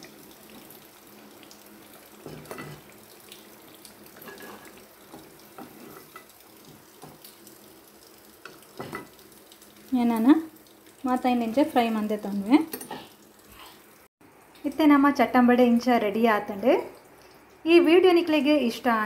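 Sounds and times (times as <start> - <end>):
food sizzling in hot oil: 0.0 - 19.0.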